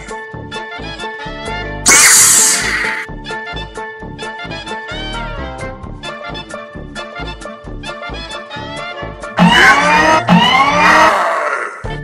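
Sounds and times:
soundtrack music: 5.3s - 12.0s.

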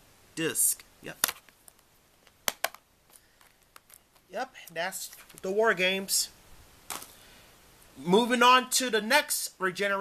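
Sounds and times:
plastic case clicks: 2.2s - 2.8s.

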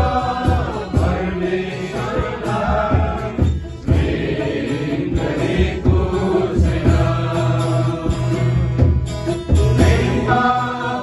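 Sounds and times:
man's voice leading singing: 0.0s - 4.0s, 9.7s - 11.0s
guitar strumming: 0.0s - 11.0s
people singing worship song: 0.0s - 11.0s.

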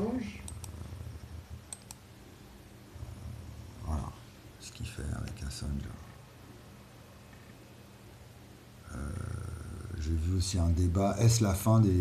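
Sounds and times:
faint room hiss: 0.0s - 12.0s
man humming nasally: 8.8s - 10.1s.

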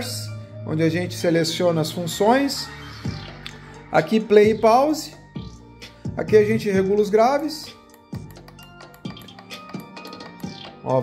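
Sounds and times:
music with deep beat: 2.6s - 11.0s.

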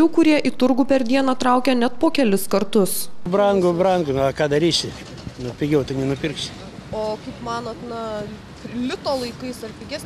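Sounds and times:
man talking: 3.2s - 6.5s.

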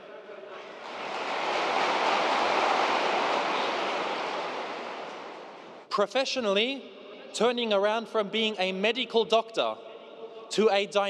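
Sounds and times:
large audience applauding: 0.5s - 5.8s.

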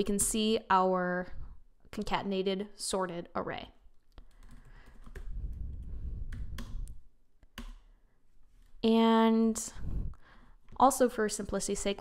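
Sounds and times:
low rumble: 5.3s - 7.0s, 9.7s - 10.2s
computer keyboard key clicks: 6.3s - 7.8s.

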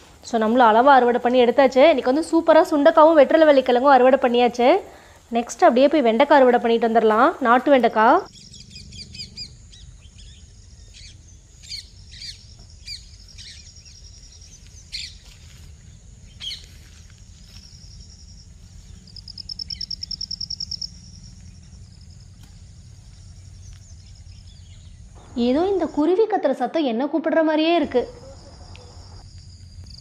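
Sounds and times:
birds chirping: 7.8s - 16.8s, 17.7s - 26.1s
bird trill: 8.3s - 15.2s, 18.9s - 21.7s.

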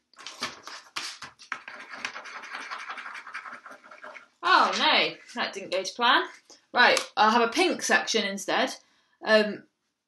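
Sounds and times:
pen scribbling on paper: 1.0s - 6.4s.

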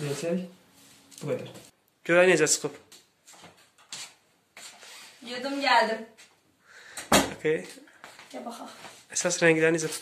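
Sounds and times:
faint rubbing sounds: 0.0s - 1.8s, 3.2s - 6.4s, 8.0s - 10.0s.

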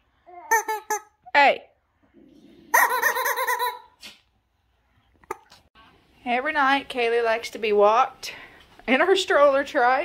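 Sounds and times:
baby squealing: 2.8s - 3.9s.

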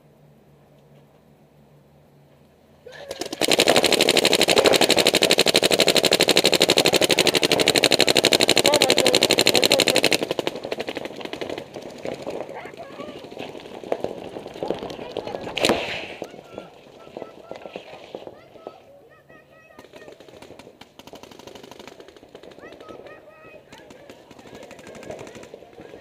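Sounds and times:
paintball markers firing: 3.0s - 18.8s, 19.7s - 26.0s.

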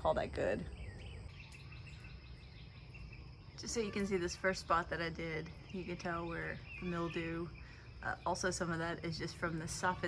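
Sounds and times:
insect trilling: 0.1s - 10.0s.

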